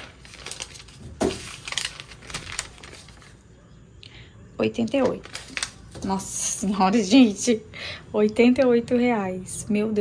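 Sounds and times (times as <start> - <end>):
plastic packaging crinkling: 0.0 - 3.4, 4.8 - 7.0.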